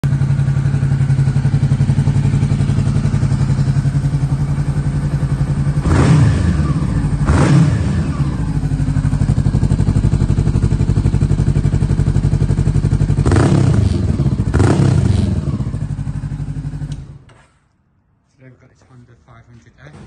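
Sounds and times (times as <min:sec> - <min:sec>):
motorcycle engine idling: 0:00.0 - 0:17.2.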